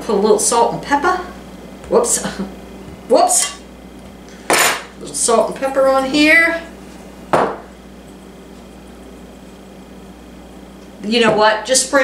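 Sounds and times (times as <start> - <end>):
faint steady hum: 0.0 - 12.0
shaker knocking on countertop: 7.3 - 7.6.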